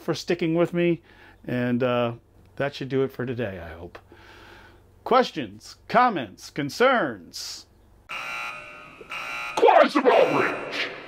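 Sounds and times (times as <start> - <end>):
buzzer-like alarm tone: 8.1 - 11.0
loud voice calling out: 9.6 - 11.0.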